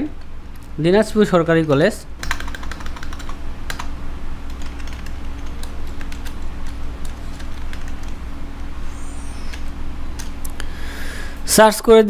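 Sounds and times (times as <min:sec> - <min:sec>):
steady low hum: 0:00.0 - 0:12.0
computer keyboard typing: 0:01.6 - 0:03.9, 0:04.5 - 0:08.2.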